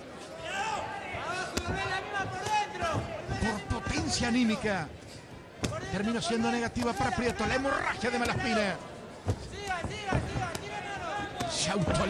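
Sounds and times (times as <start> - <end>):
boxing punches thudding: 1.5 - 3.6, 5.6 - 5.8, 9.2 - 12.0.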